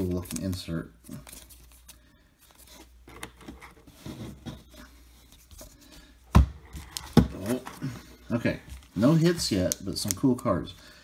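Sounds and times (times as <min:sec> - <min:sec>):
cards rustling and scraping: 0:00.0 - 0:10.8.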